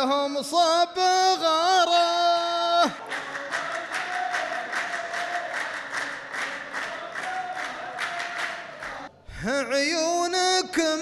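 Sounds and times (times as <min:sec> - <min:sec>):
men clapping in unison: 0:02.8 - 0:09.1.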